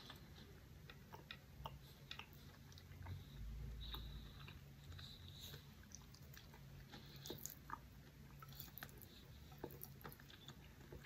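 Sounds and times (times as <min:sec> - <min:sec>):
wet chewing clicks: 0:00.0 - 0:11.0.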